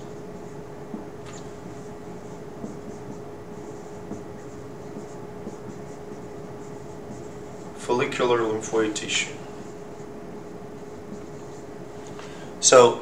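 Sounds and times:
marker writing on whiteboard: 0:00.0 - 0:12.2
low room hum: 0:00.0 - 0:13.0.

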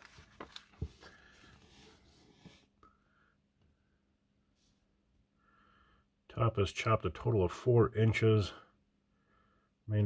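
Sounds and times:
magazine pages rustling: 0:00.0 - 0:02.6.

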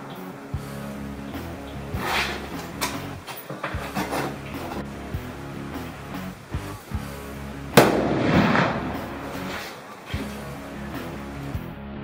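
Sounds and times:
background music: 0:00.0 - 0:12.0
rifle shot: 0:07.8 - 0:09.7.

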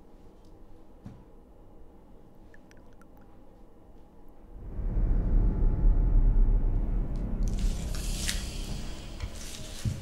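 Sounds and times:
deep loud rumble: 0:04.5 - 0:09.9.

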